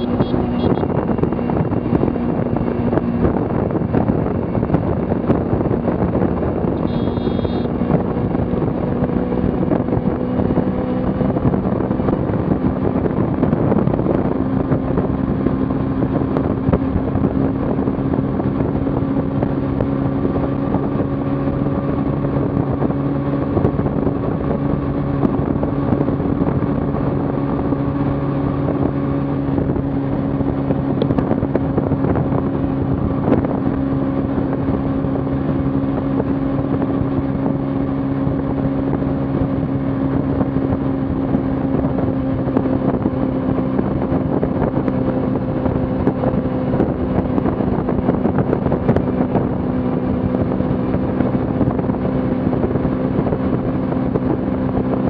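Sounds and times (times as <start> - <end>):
motorcycle engine cruising: 0.0 - 55.0
wind rushing over microphone: 0.0 - 55.0.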